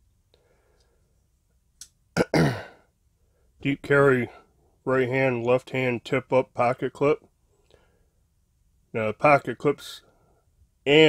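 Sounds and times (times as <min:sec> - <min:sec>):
man clearing throat: 0:02.2 - 0:02.9.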